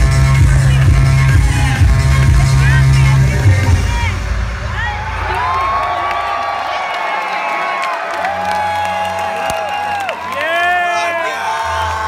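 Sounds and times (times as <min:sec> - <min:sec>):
deep heavy bass drop: 0:00.0 - 0:05.8
steady bass line: 0:00.0 - 0:06.0.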